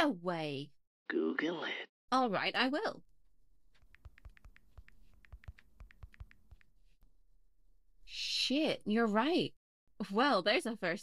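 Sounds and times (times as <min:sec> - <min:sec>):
typing on keyboard: 0:03.7 - 0:06.7.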